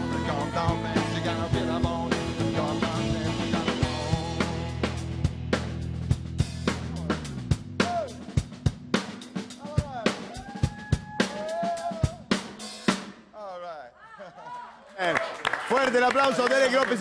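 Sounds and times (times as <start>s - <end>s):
drum kit fill: 0.0s - 13.3s.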